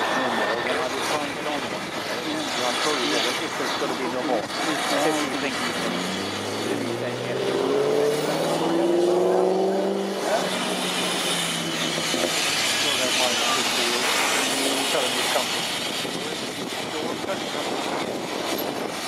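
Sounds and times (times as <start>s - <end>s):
droning engine-like tone: 0.0s - 19.0s
steam hissing: 0.0s - 19.0s.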